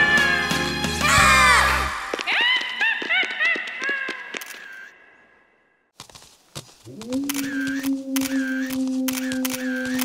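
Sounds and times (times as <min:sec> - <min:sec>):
cartoon camera shutter clicks: 0:07.3 - 0:10.0.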